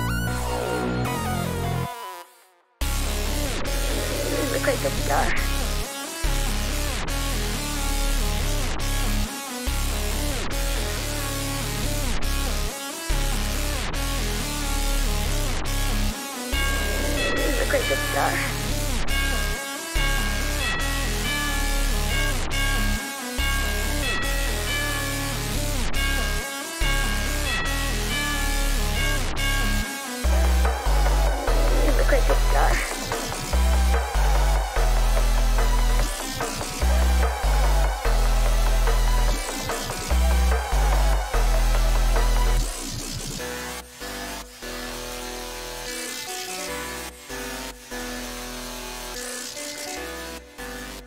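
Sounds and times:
heavy bass: 0:00.0 - 0:01.9, 0:02.8 - 0:23.0, 0:27.0 - 0:44.4
bright synth melody: 0:00.0 - 0:02.5, 0:16.5 - 0:19.6.

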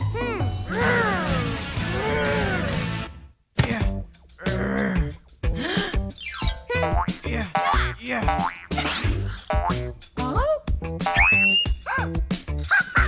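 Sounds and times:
upbeat children's music: 0:05.0 - 0:13.0
cartoon boing sound effects: 0:11.1 - 0:11.6
rising whistle: 0:11.2 - 0:11.8.

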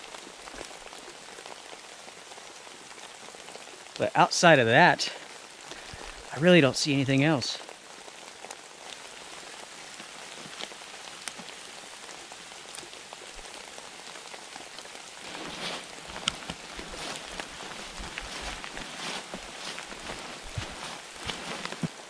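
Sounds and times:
steady rain on forest: 0:00.0 - 0:22.0
steps through wet undergrowth: 0:14.2 - 0:22.0.

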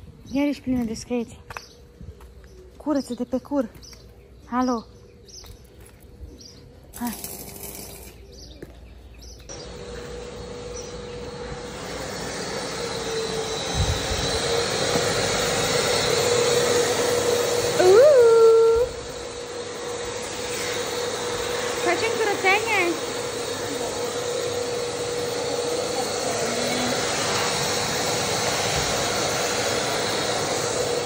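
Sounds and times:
shop vacuum running: 0:07.0 - 0:31.0.

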